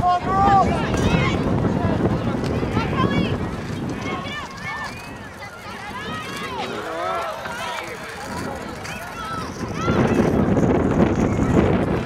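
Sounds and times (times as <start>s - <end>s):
people shouting and calling: 0.0s - 10.6s.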